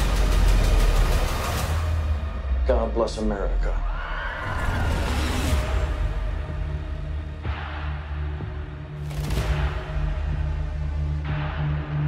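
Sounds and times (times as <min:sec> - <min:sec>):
loud cinematic trailer score: 0:00.0 - 0:12.0.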